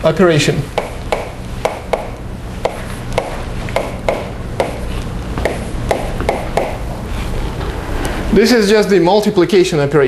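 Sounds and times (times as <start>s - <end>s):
low room hum: 0.0s - 10.0s
chalk tapping on blackboard: 0.7s - 6.8s.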